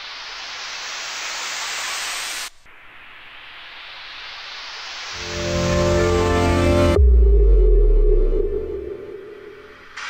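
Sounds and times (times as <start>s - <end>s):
white-noise riser sweeping upward: 3.2s - 10.0s
deep house music: 5.2s - 9.7s.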